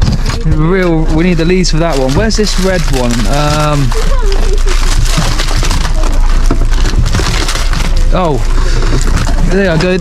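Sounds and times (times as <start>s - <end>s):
packaging crinkling and rustling: 0.0s - 10.0s.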